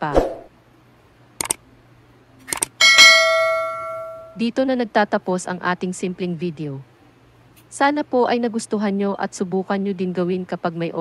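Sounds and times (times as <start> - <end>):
mouse clicks: 1.4 - 1.6
notification bell ding: 2.8 - 4.4.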